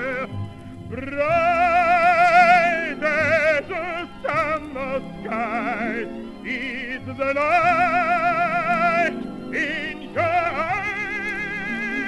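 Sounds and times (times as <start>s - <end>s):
musical accompaniment: 0.0s - 12.0s
operatic tenor singing: 0.0s - 12.0s.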